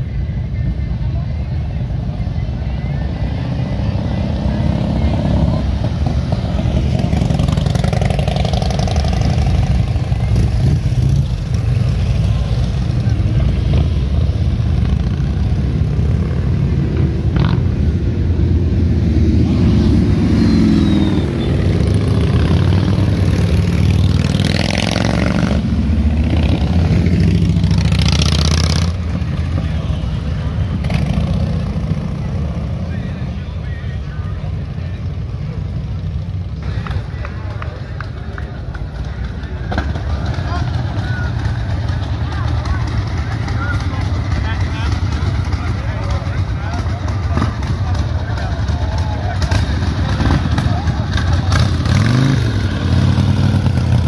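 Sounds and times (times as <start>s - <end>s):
crowd voices: 0.0s - 54.0s
motorcycles riding past revving: 3.5s - 33.2s, 35.8s - 54.0s.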